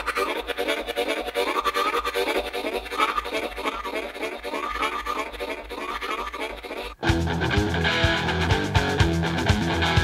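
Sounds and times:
scratchy repeating music: 0.0 - 10.0.

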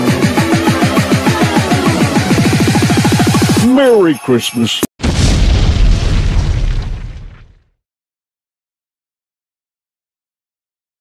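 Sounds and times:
deep loud boom: 5.0 - 7.7.

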